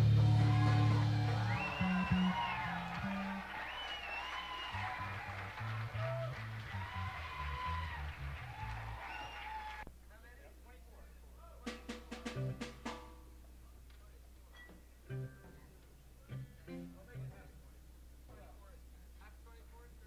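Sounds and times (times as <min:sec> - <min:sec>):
electric guitar notes: 0:00.0 - 0:03.5, 0:15.1 - 0:17.6
bass guitar notes: 0:00.0 - 0:03.6, 0:04.7 - 0:09.0, 0:11.6 - 0:13.6, 0:15.0 - 0:17.7.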